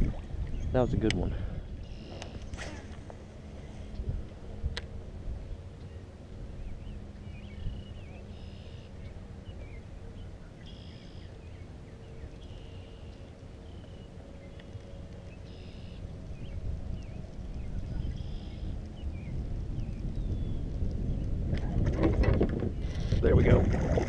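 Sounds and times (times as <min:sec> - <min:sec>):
wind on microphone: 0:00.0 - 0:08.3, 0:16.1 - 0:24.0.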